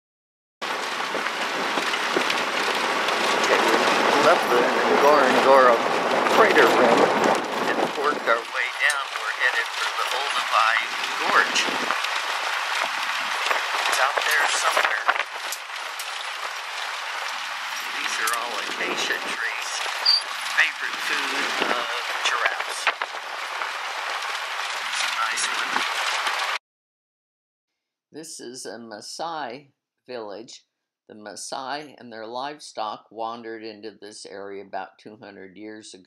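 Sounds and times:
road and wind noise: 0.6s - 26.6s.

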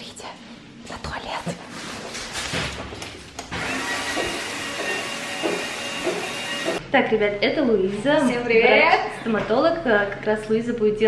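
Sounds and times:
bidet motor whine and rushing: 3.6s - 6.8s.

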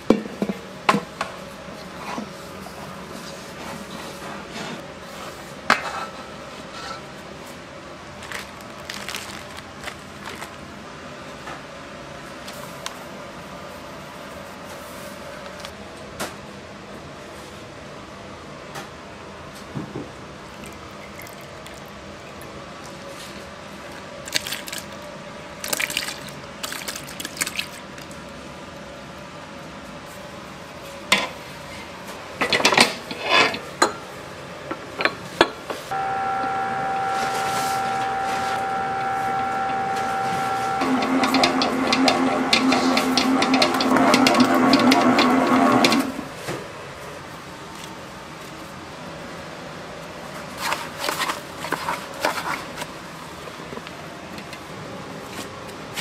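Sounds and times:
stand mixer motor whine: 35.9s - 46.2s.

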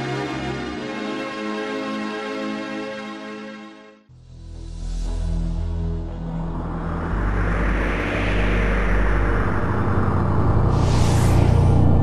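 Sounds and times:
low soundtrack drone: 4.1s - 12.0s
cinematic whoosh: 4.4s - 12.0s.

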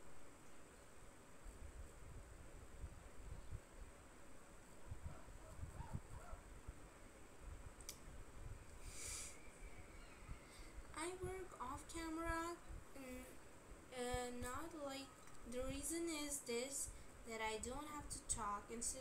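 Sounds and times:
short hiss: 8.8s - 9.4s.

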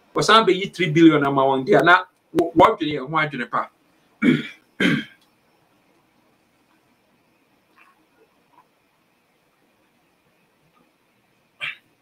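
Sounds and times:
man clearing his throat: 4.2s - 5.2s, 11.6s - 11.9s.

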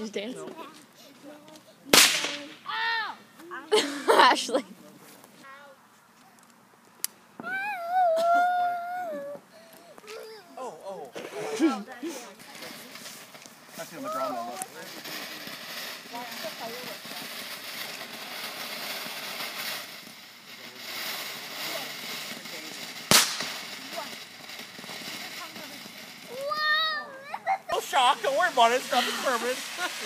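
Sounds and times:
firework fountain hissing: 0.0s - 4.6s, 7.1s - 30.0s
sharp bang: 2.0s - 2.6s, 23.1s - 23.6s.

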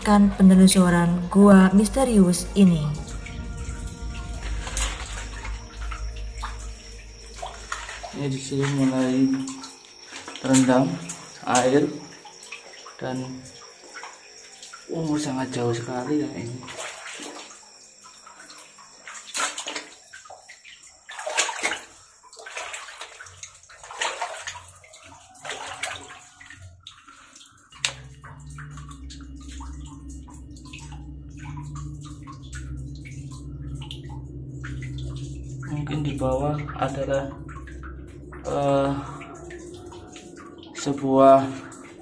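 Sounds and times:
steady low hum: 0.0s - 24.8s, 26.4s - 42.0s
water sloshing and splashing: 0.0s - 42.0s.

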